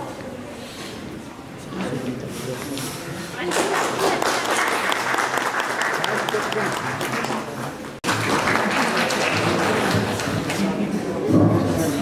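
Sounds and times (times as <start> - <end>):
audience applauding: 3.4 - 10.6.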